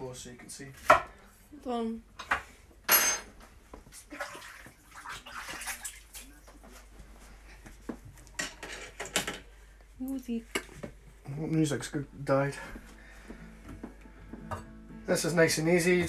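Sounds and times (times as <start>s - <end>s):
knife and crockery clinking: 2.9s - 3.3s.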